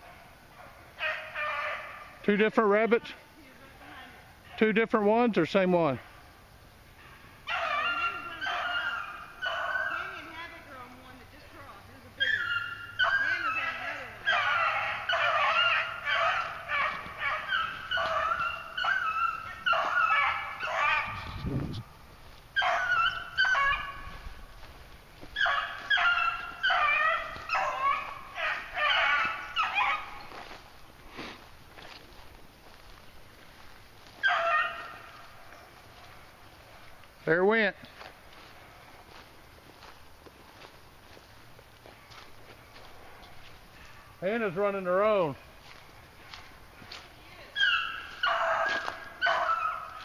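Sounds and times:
beagles baying: 0:00.0 - 0:03.0, 0:05.9 - 0:50.0.

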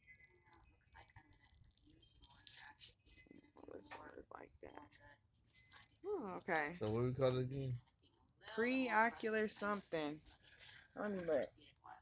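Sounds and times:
whispered and murmured speech: 0:00.0 - 0:06.1.

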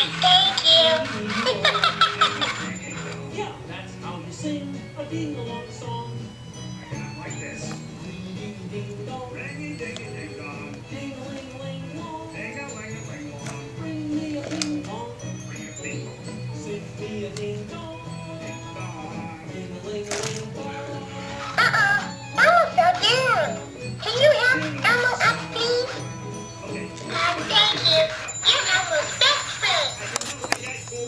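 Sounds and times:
high-pitched voice with sliding pitch: 0:00.0 - 0:01.5, 0:21.4 - 0:26.0, 0:27.0 - 0:30.1
electronic toy tune: 0:21.3 - 0:31.0.

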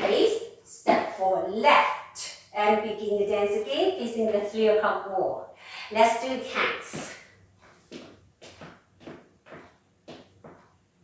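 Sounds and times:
boots stepping on hard floor: 0:06.9 - 0:10.8.

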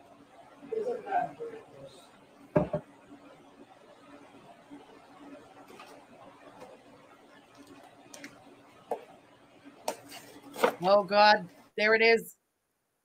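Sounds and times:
low steady hum: 0:00.0 - 0:12.1
clicks and taps on a counter: 0:02.6 - 0:02.9.

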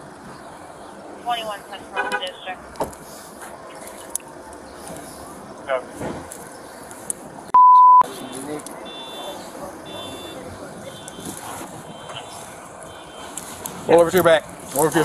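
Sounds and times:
faint outdoor background noise: 0:00.0 - 0:15.0
censor bleep tone: 0:07.5 - 0:08.1
distant voices: 0:08.1 - 0:15.0.

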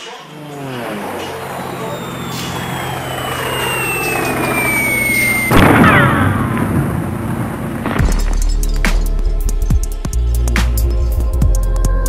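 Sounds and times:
power saw running: 0:00.0 - 0:07.6
high saw whine: 0:00.0 - 0:11.9.

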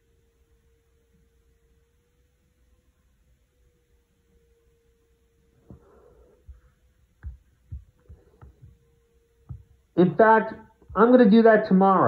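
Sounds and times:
faint steady hum: 0:00.0 - 0:12.0
soft low thuds: 0:05.6 - 0:09.9.

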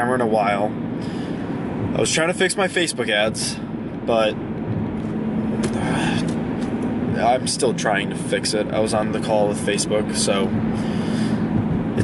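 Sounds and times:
car cabin road noise: 0:00.0 - 0:12.0.

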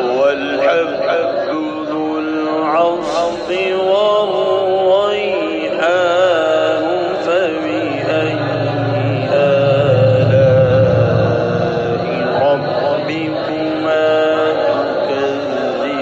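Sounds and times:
man reciting melodically: 0:00.0 - 0:16.0.

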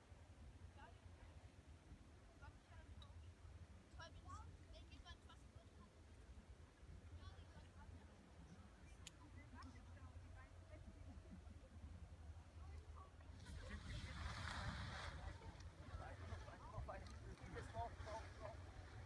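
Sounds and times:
low wind rumble on microphone: 0:13.3 - 0:19.0.

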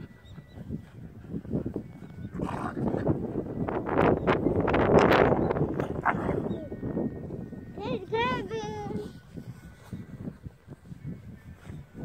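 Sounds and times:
puppies growling: 0:05.8 - 0:06.8.

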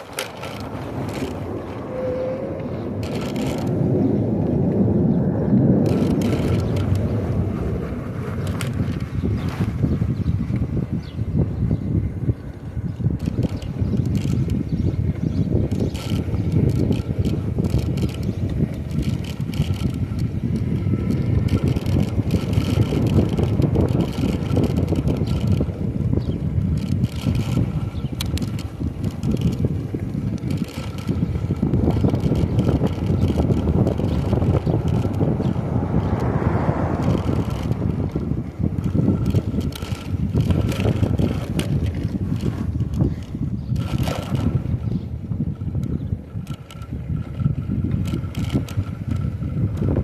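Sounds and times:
light clicks and rattles: 0:00.0 - 0:01.8, 0:03.0 - 0:03.8, 0:13.2 - 0:44.6, 0:45.8 - 0:50.0
wind buffeting microphone: 0:00.0 - 0:50.0.

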